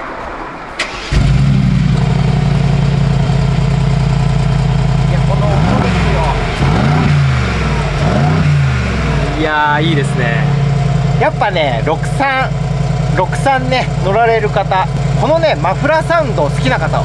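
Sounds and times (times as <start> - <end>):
car engine starting and idling: 0.0 - 17.0.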